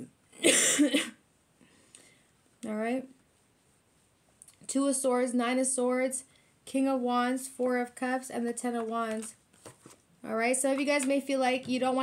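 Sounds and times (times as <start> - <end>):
woman coughing: 0.4 - 1.2.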